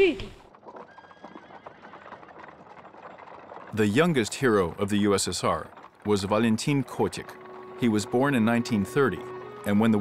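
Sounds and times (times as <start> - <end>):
horse hooves clopping: 0.0 - 10.0.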